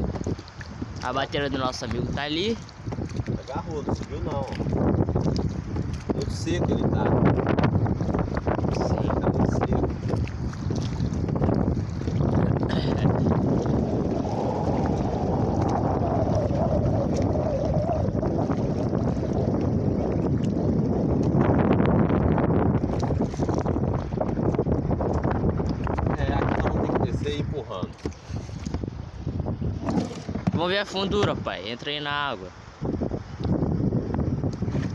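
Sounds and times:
water slapping: 0.0 - 34.9
wind buffeting microphone: 0.0 - 34.9.

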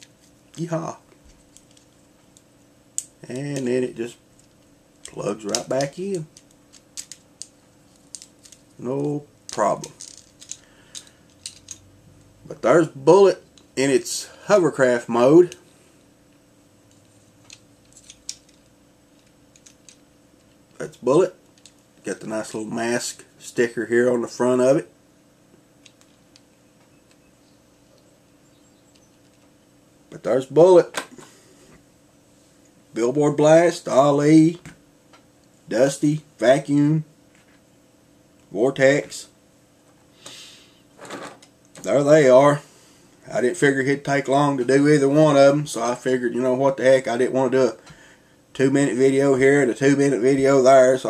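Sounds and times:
faint steady hum: 0.0 - 51.0.

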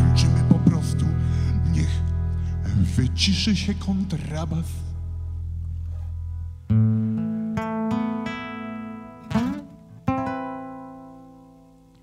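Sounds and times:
low double-bass note: 0.0 - 7.5
acoustic guitar strumming chords: 0.0 - 12.0.

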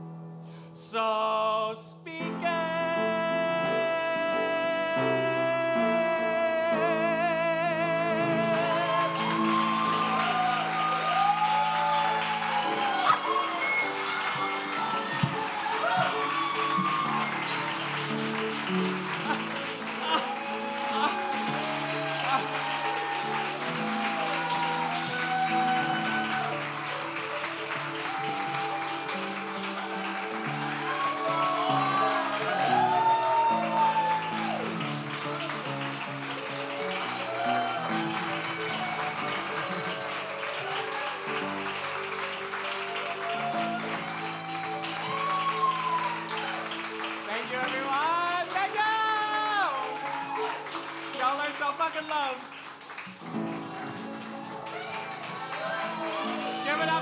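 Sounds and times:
person singing: 0.8 - 11.0, 18.0 - 40.2
live music with sustained chords: 4.5 - 57.0
audience clapping: 7.7 - 57.0.

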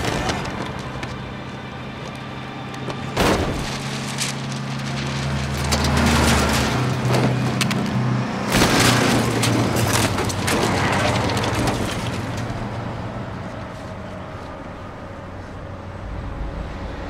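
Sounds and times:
low traffic hum: 0.0 - 17.0
trucks rushing past: 0.0 - 17.0.

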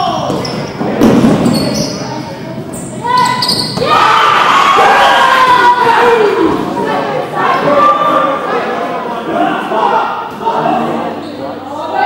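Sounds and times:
players shouting: 3.0 - 11.0.

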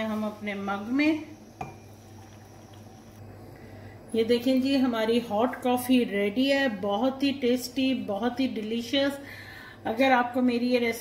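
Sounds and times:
low steady hum: 0.0 - 11.0
liquid pouring into mug: 1.5 - 3.2.

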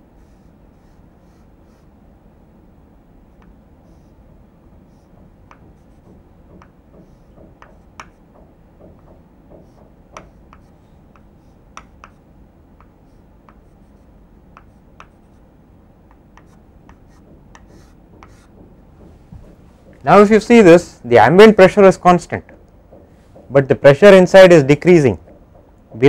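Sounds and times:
chalk scratching on blackboard: 4.8 - 8.3, 9.5 - 12.2, 12.8 - 15.4, 16.4 - 18.6.

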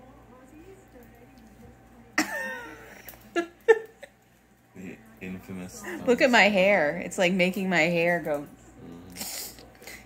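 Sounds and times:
woman laughing: 2.2 - 4.2.

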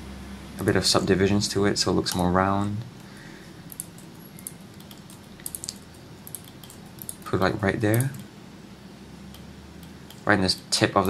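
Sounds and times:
low steady hiss: 0.0 - 11.0
keyboard and mouse clicks: 3.7 - 7.3, 7.9 - 8.3.

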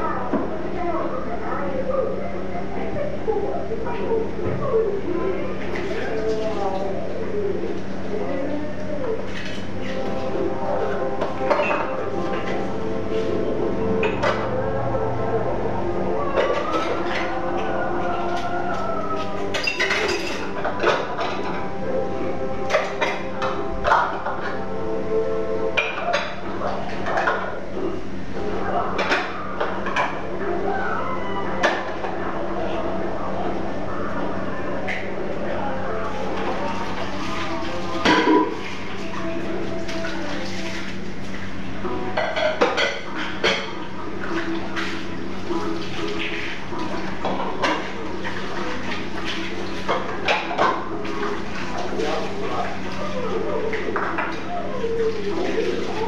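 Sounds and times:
indistinct voices: 0.0 - 56.0
dishes clinking at sink: 11.2 - 12.6, 19.5 - 21.6, 22.7 - 24.6, 25.8 - 27.5, 37.8 - 38.8, 42.1 - 44.9, 46.0 - 48.6, 49.2 - 56.0.

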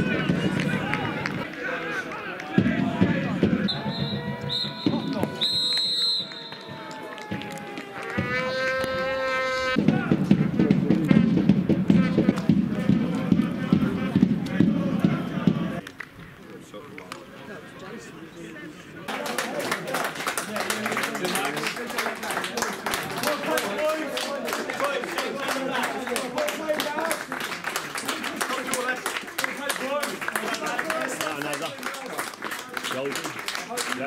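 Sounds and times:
crowd noise and chatter: 0.0 - 34.0
players and spectators voices: 0.0 - 34.0
referee's whistle blasts: 3.6 - 6.9
long shout: 3.7 - 10.1.

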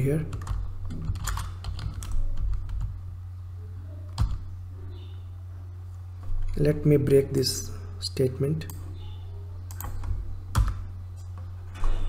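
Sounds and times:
low electrical hum: 0.0 - 12.0
computer keyboard keystrokes: 0.3 - 2.9, 9.7 - 11.3.

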